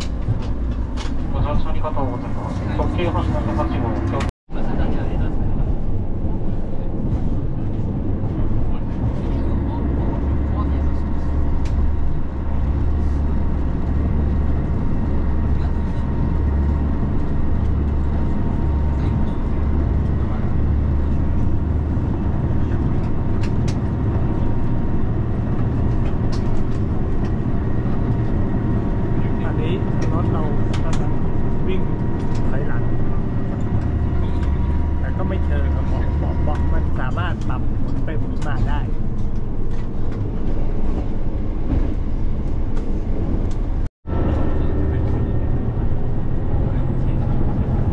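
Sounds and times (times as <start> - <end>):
train wheels rumbling: 0.0 - 47.9.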